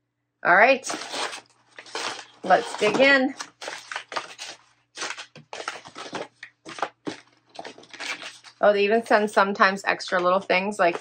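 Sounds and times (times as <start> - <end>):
packing paper crinkling: 0.8 - 8.6.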